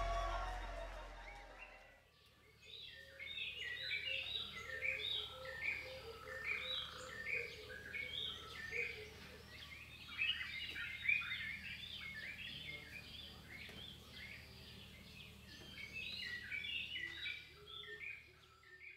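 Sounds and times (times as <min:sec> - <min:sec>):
lower repeated bird note: 0:00.0 - 0:01.9
birds chirping: 0:00.0 - 0:18.9.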